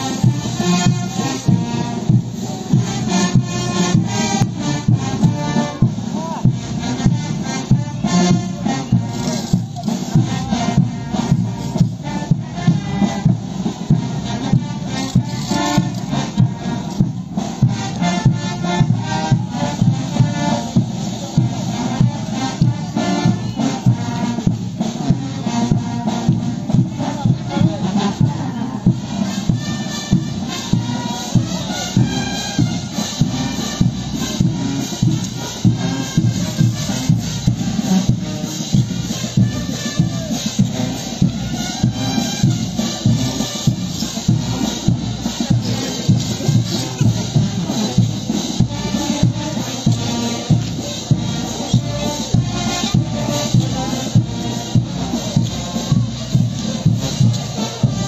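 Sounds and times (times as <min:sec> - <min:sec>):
folk dance band music: 0:00.0 - 0:58.0.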